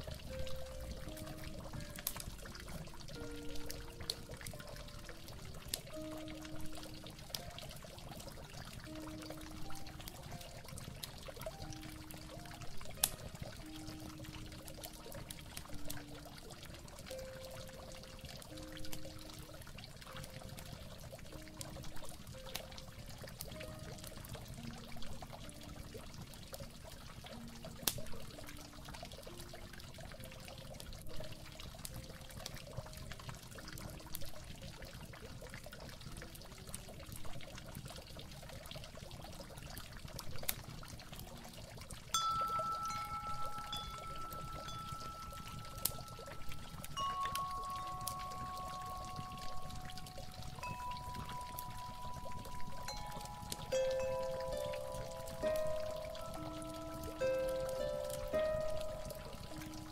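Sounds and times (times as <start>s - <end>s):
soft melody of held notes: 0.0s - 59.9s
water trickling and pouring: 0.0s - 59.9s.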